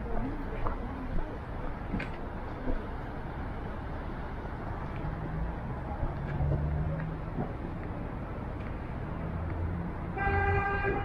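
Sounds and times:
street traffic rumble: 0.0 - 11.0
vehicle horn toot: 10.2 - 11.0.

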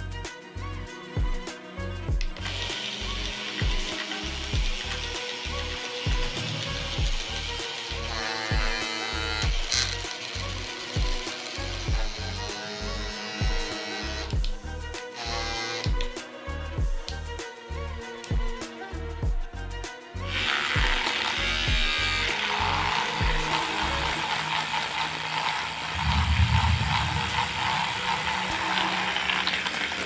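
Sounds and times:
background music with beat: 0.0 - 24.4
small motor whirring and rattling: 2.4 - 14.4, 20.3 - 30.0.

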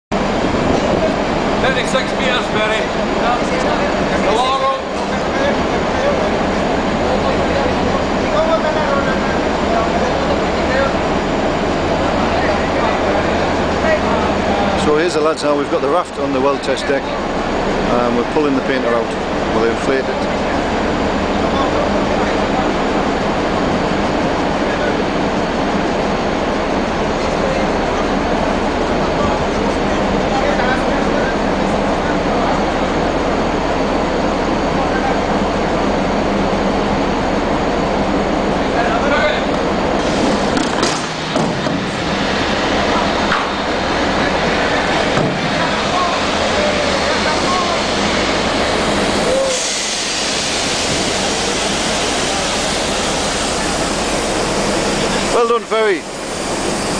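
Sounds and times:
ship machinery rumbling: 0.1 - 56.9
wind: 0.1 - 56.9
faint voices: 42.3 - 49.9.

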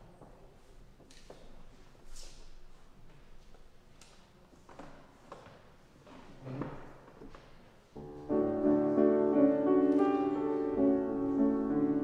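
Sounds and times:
grand piano chords: 8.0 - 12.0.

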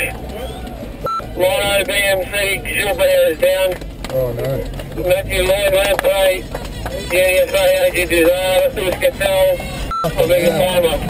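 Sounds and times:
man calling out: 9.4 - 11.0
short beep: 9.9 - 10.6.

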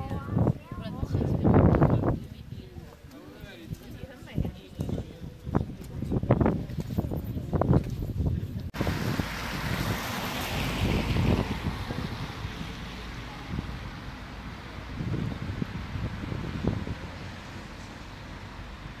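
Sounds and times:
wind buffeting microphone: 0.0 - 3.0, 3.6 - 19.0
tyres hissing on wet road: 8.8 - 19.0.

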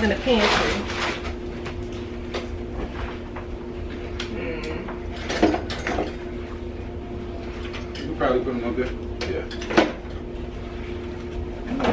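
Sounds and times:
plastic bag rustling: 0.0 - 1.6
steady low hum: 0.0 - 11.9.

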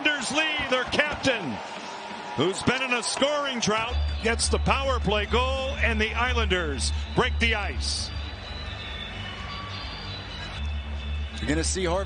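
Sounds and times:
man commentating excitedly: 0.0 - 1.6, 2.4 - 8.1.

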